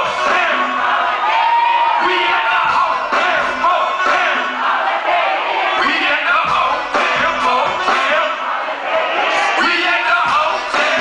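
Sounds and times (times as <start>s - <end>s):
rapper shouting into microphone: 0.0s - 4.6s, 5.7s - 8.5s, 9.3s - 11.0s
concert crowd yelling: 0.0s - 11.0s.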